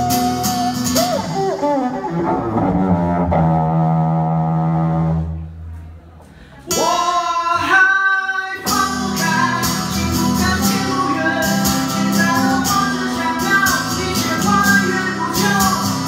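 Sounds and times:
acoustic guitar: 0.0 - 16.0
man singing: 6.7 - 16.0.

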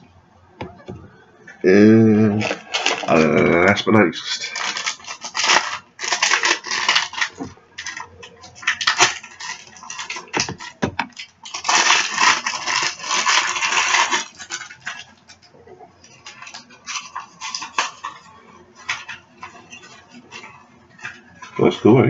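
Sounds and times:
foil wrapper crinkling: 2.3 - 21.8.

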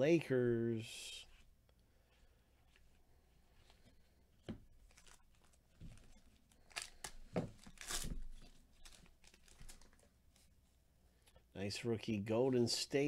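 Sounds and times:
trading cards rustling: 4.8 - 10.5.

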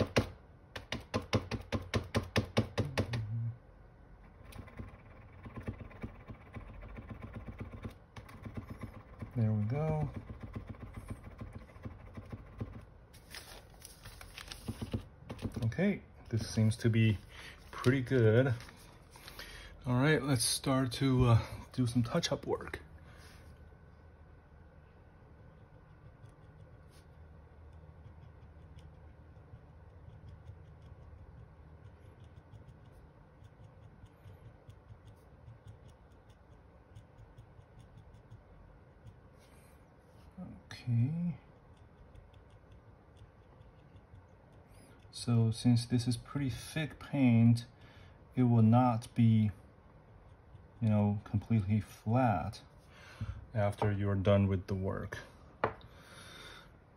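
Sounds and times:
low room hum: 0.0 - 56.9
paper rustle: 13.1 - 15.0
pen tip ticking on metal: 28.0 - 39.2, 41.6 - 44.6.

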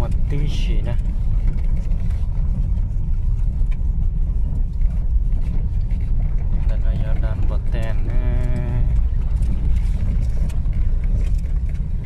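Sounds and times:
car driving on dirt road: 0.0 - 12.0.

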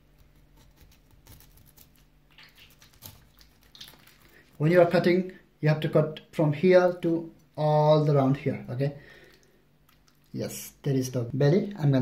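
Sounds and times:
knife scraping fish: 0.0 - 4.2.

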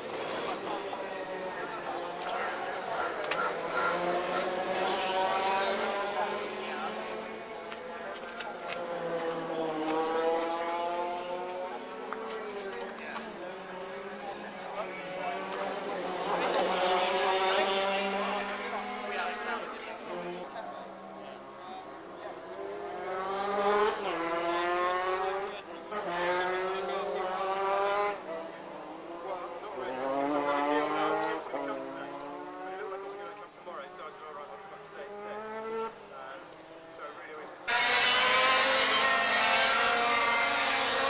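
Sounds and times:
kart engine passing by: 0.0 - 7.9, 8.8 - 12.6, 13.3 - 33.4, 34.6 - 37.0, 37.6 - 41.0.

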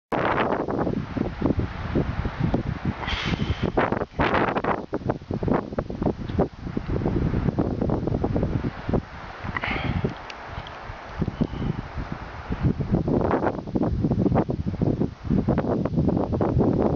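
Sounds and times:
wind buffeting microphone: 0.1 - 16.9.

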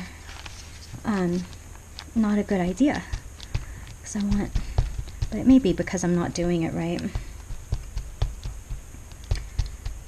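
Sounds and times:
ink pad tapping rubber stamp: 2.4 - 10.0.

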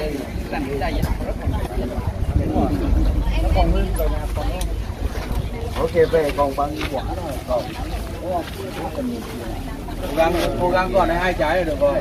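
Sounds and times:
men talking: 0.0 - 12.0
wind rumble on microphone: 0.3 - 6.2.

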